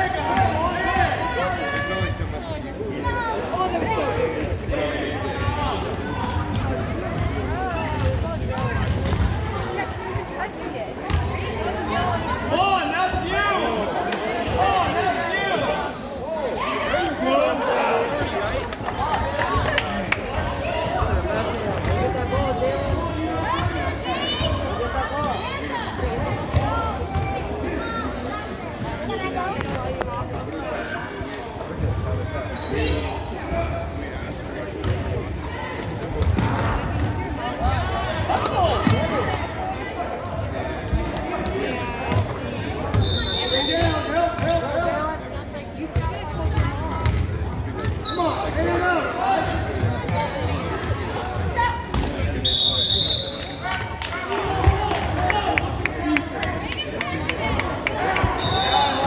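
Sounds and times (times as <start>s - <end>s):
referee whistle blasts: 43.0s - 43.9s, 52.4s - 53.6s, 58.4s - 59.0s.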